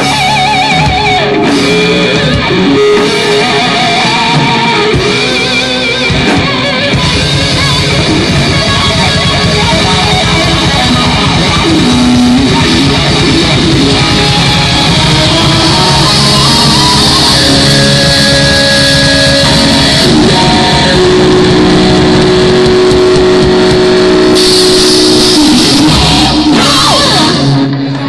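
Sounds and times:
heavy rock band playing: 0.0s - 28.0s.

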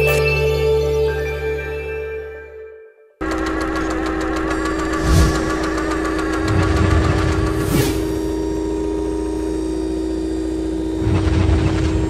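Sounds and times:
low hum: 3.2s - 12.0s
synthesized drone: 3.2s - 12.0s.

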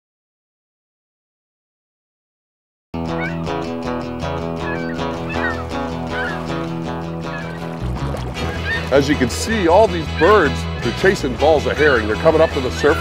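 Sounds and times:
instrumental music with bass notes: 3.0s - 13.0s.

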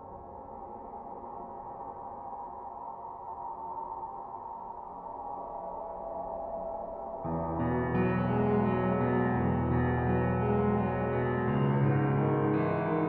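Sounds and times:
ambient drone music: 0.0s - 13.0s.

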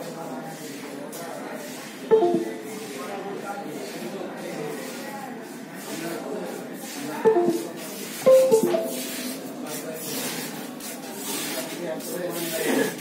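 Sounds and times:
music: 2.1s - 2.5s, 7.3s - 9.3s.

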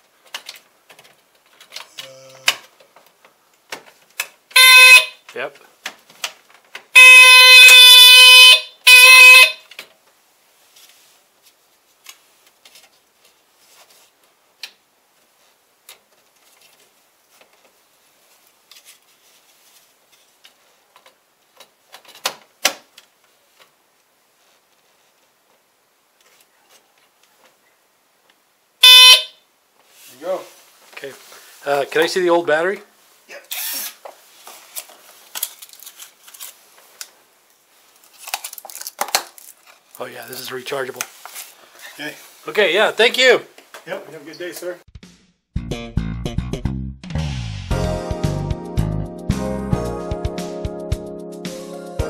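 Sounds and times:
smoke detector alarm blasts: 4.6s - 5.2s, 7.0s - 9.6s, 28.8s - 29.4s.

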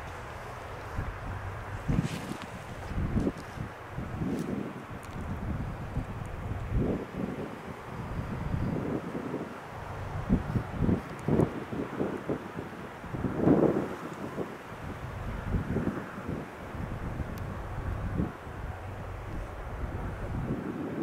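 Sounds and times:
distant diesel freight train drone: 0.0s - 21.0s
wind buffeting microphone: 0.0s - 21.0s.

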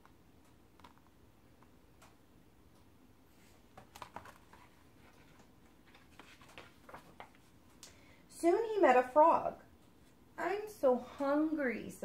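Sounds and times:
book pages rustling: 3.3s - 7.8s.

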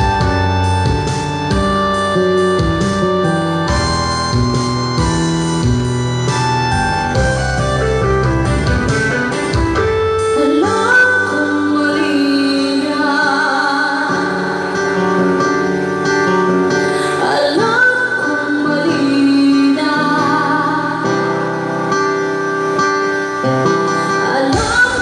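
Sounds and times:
instrumental accompaniment: 0.0s - 25.0s
woman singing into microphone: 10.2s - 22.8s, 23.7s - 25.0s.

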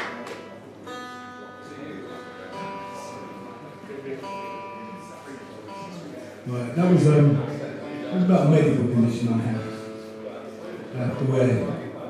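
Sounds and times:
electric guitar notes and chords: 0.0s - 12.0s.

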